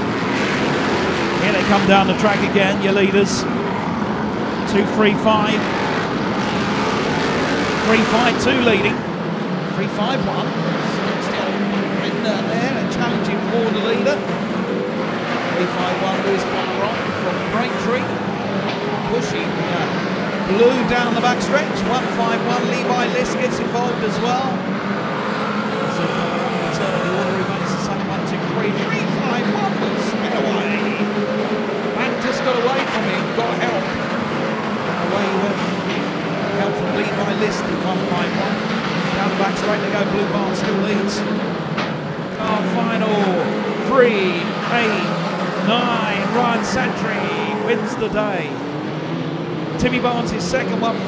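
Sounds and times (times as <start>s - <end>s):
racing car engines droning: 0.0s - 51.0s.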